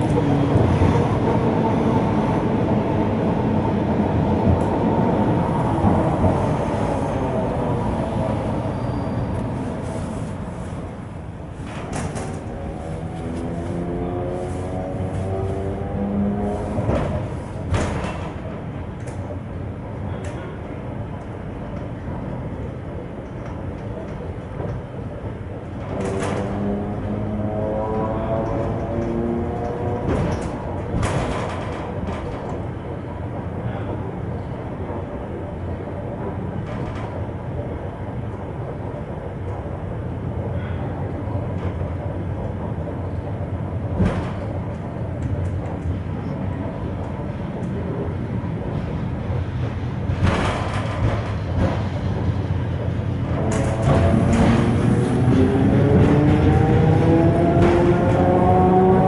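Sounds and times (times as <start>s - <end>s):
train hum and rumble: 0.0s - 59.0s
sharp clicks and knocks: 50.1s - 52.4s, 53.2s - 56.7s.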